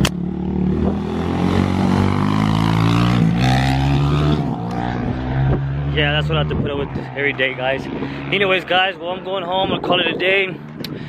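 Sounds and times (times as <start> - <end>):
road or wind noise: 0.0 - 11.0
vehicle engine revving: 0.0 - 11.0.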